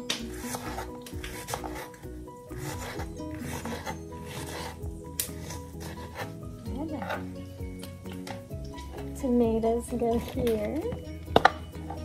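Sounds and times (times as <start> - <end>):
knife slicing onion on wooden board: 0.0 - 7.3
background music: 0.0 - 12.0.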